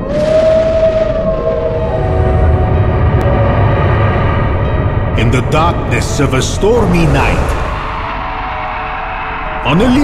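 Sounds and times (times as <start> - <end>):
dark horror soundtrack tone: 0.0 - 10.0.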